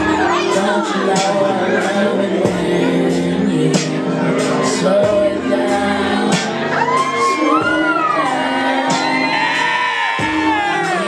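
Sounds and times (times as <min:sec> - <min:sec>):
backing track with bass line: 0:00.0 - 0:11.0
woman singing: 0:00.0 - 0:11.0.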